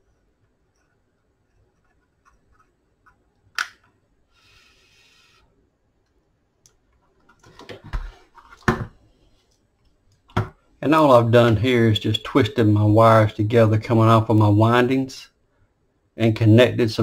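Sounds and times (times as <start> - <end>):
soft hiss: 0.0 - 17.0
person speaking: 10.8 - 15.4.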